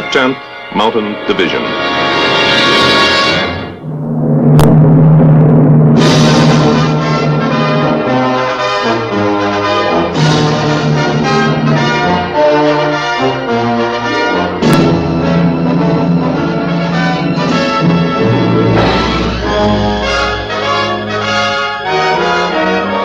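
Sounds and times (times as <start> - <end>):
orchestral music: 0.0 - 23.0
sharp strike: 17.0 - 21.3.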